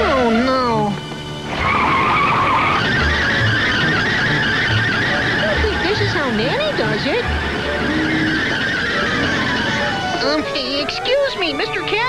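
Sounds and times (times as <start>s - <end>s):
cartoon tires screeching: 0.0s - 10.6s.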